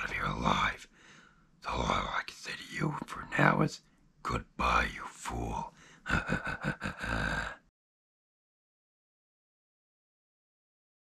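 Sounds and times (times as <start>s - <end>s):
man laughing evilly: 6.1s - 7.6s.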